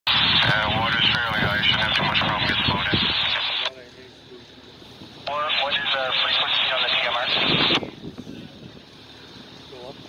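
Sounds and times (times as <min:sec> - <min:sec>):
person talking over radio scanner: 0:00.4 - 0:03.7, 0:05.3 - 0:07.8.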